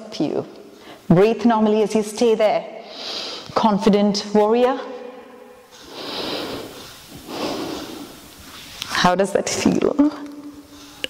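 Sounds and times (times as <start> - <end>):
woman breathing slowly: 0.7 - 1.1, 2.8 - 3.6, 5.7 - 8.6.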